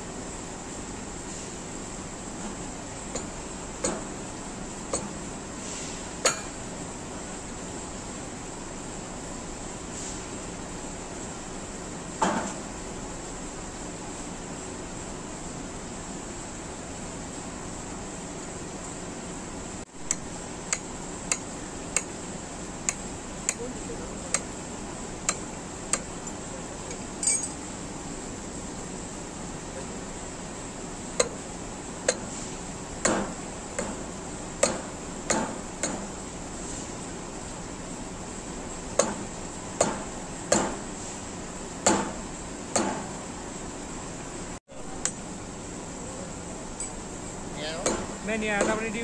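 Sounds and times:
hammer striking coupling: 6.2 - 6.6, 31.2 - 31.4.

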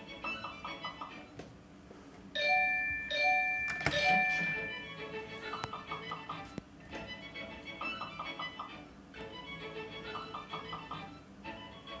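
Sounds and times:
slot machine ding-dong chime: 2.4 - 5.0.

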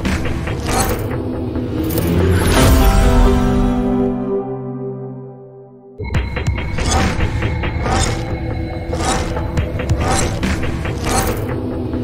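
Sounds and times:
music: 0.0 - 12.0
mechanical clicking sound effect: 6.8 - 11.6.

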